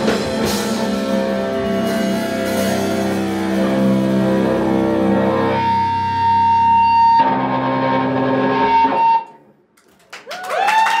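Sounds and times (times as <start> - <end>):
distorted electric guitar chord: 0.0 - 9.2.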